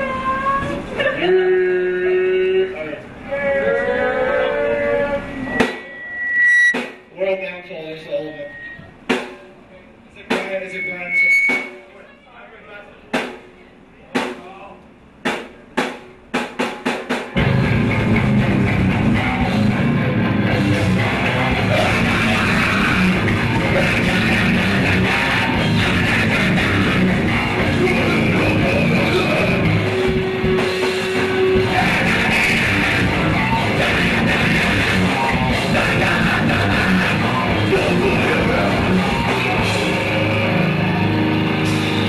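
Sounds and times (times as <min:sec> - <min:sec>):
high-pitched tone: 0:03.7 - 0:06.8, 0:08.0 - 0:08.9, 0:10.6 - 0:11.9
metal band playing: 0:17.3 - 0:42.0.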